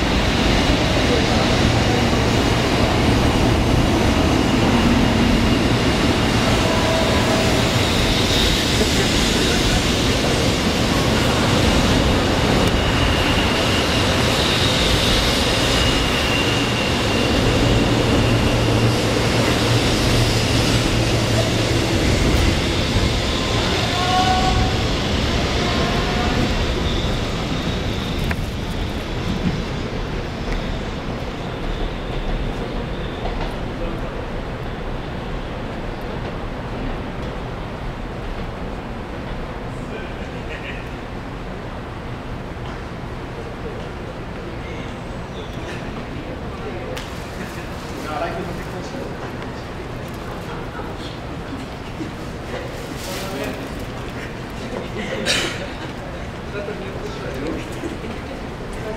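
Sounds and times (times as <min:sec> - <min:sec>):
train hum and high whine: 0:00.0 - 0:58.9
train wheels rumbling on rail: 0:00.0 - 0:58.9.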